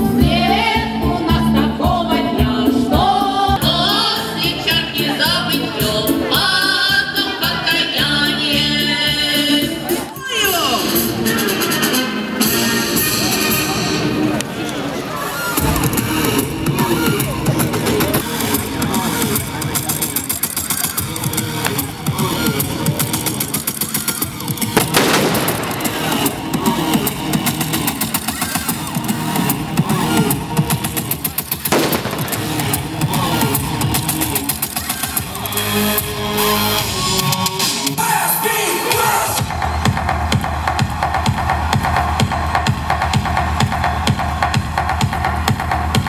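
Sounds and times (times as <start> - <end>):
music playing: 0.0 - 46.0
gunfire-like bangs: 24.7 - 28.4, 31.7 - 33.7
smoke grenade blast: 24.8 - 27.6, 31.7 - 33.1.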